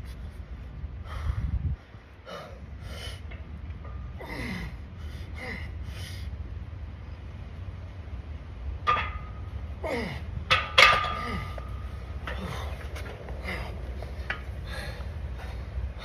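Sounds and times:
hard breathing: 1.0 - 3.4, 11.3 - 16.0
grunts: 4.2 - 4.8, 9.8 - 10.3
barbell clanking on steel hooks: 8.8 - 9.6, 10.4 - 14.8.

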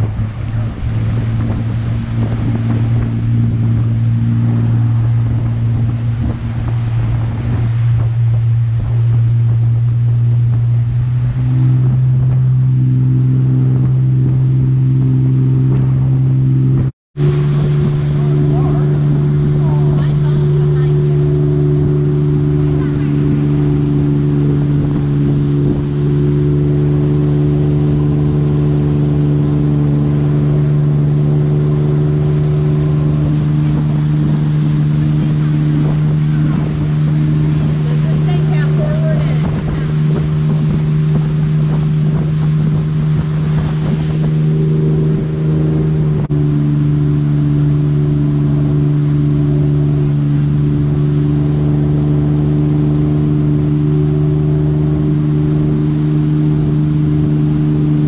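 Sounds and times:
motorboat engine drone: 0.0 - 58.0
rushing wake water: 0.0 - 58.0.

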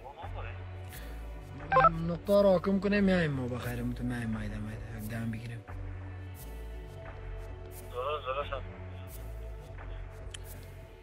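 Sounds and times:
low background music: 0.0 - 11.0
electronic beep: 1.7 - 1.9.

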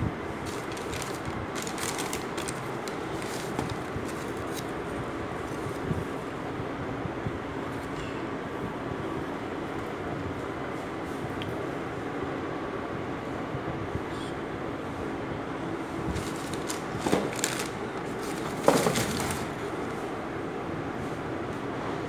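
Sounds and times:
tissue paper crinkling: 0.4 - 4.7, 16.1 - 19.6.

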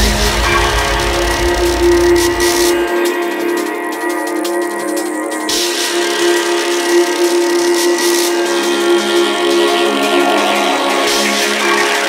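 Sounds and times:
sustained synth chord: 0.0 - 3.3.

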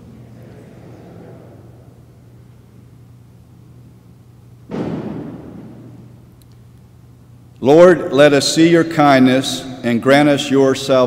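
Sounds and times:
low electrical hum: 0.0 - 11.0
reverberant thump: 4.7 - 6.3.

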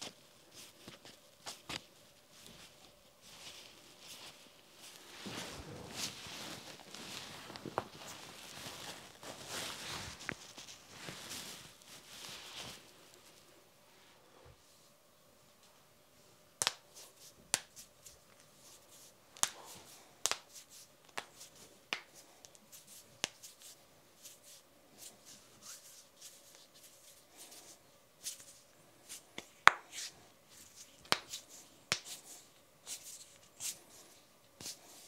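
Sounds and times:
hands rustling: 0.0 - 13.5, 16.6 - 35.0
knuckles cracking: 19.4 - 19.6, 20.2 - 21.3.

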